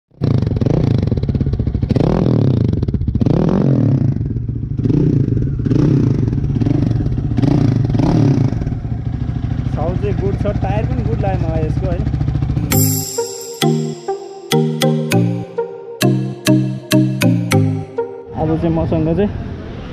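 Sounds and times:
motorcycle engine revving: 0.2 - 12.7.

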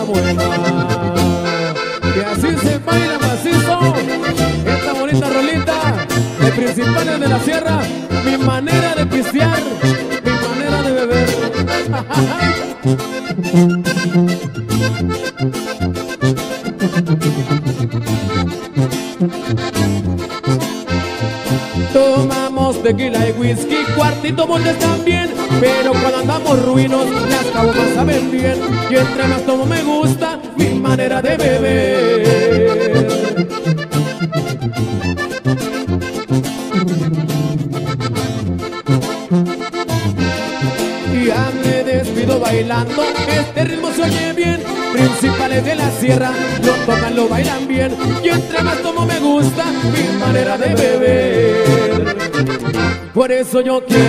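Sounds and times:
strummed acoustic guitar: 0.0 - 53.2
tuba bass notes: 0.0 - 53.3
button accordion melody: 0.0 - 54.0.

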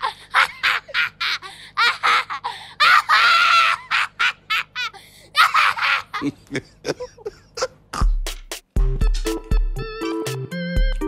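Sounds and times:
girl laughing and shrieking: 0.0 - 6.4.

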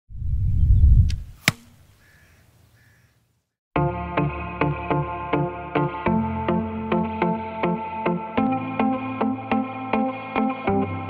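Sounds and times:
arrow whooshing in flight: 0.1 - 1.8
arrow hitting target: 1.0 - 1.9.

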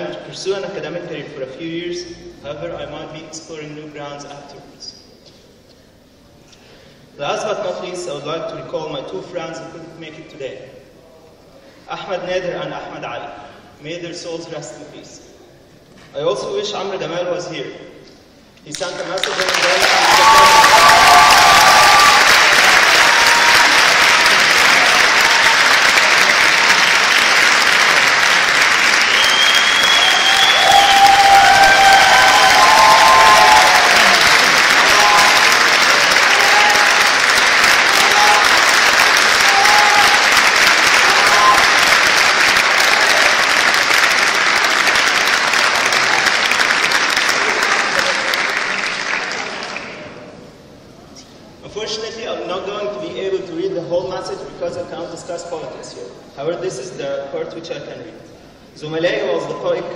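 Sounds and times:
audience applauding and cheering: 19.0 - 50.1
people shouting: 34.8 - 37.1, 37.9 - 38.6, 39.3 - 41.8.

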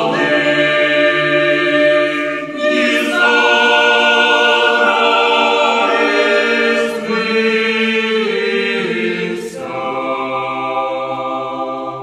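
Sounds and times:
choir singing a cappella: 0.0 - 12.0.

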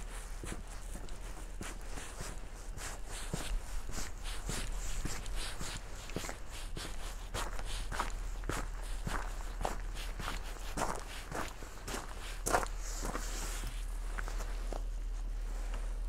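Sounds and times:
footsteps on gravel: 0.3 - 15.4.

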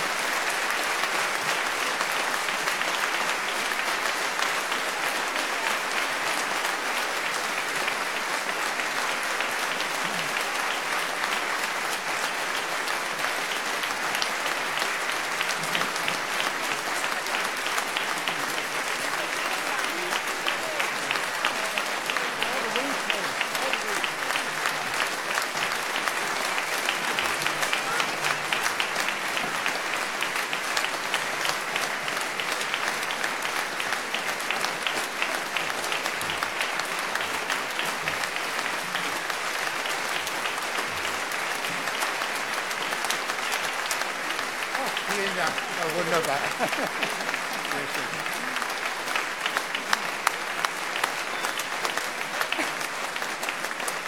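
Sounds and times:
large audience applauding: 0.0 - 54.0.

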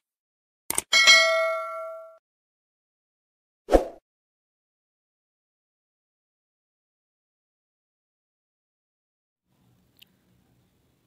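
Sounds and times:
bell ding: 0.9 - 2.2.

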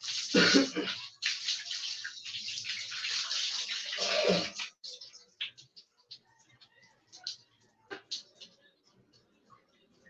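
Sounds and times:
water splashing on concrete: 0.0 - 5.7.

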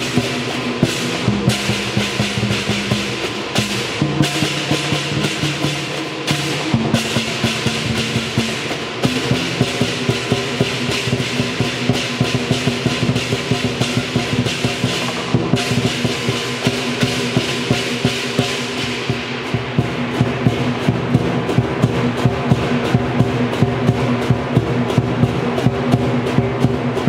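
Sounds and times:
fast drumming on large drums: 0.0 - 27.0
gong: 0.0 - 27.0
hand cymbals crashing: 0.0 - 27.0.

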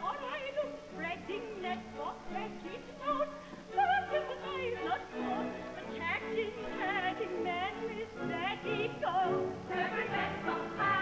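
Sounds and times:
women's chorus singing: 3.0 - 11.0
orchestra playing dance music: 4.6 - 11.0.

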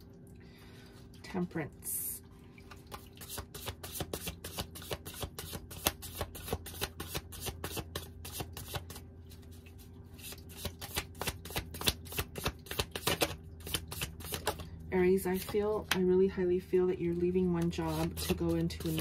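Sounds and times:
steady low hum: 0.0 - 19.0
cards being shuffled: 3.6 - 9.0, 10.2 - 14.7, 17.5 - 19.0.

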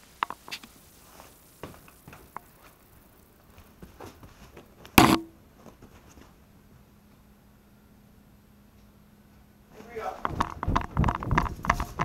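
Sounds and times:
light ticks and rustles: 0.0 - 5.0, 8.7 - 12.0
loud sharp knock: 5.0 - 5.3.

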